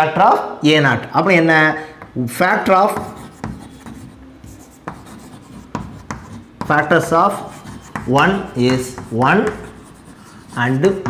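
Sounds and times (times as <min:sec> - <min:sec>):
chalk tapping on board: 0:02.8 - 0:11.0
chalk scratching on blackboard: 0:02.9 - 0:11.0.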